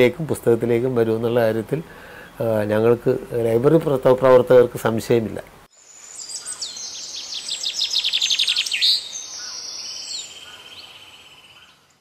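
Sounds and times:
bird chirping: 5.8 - 12.0
bird trilling: 6.1 - 11.8.

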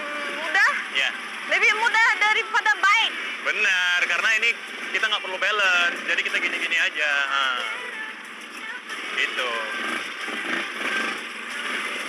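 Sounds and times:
quad bike engines running: 0.0 - 12.0.

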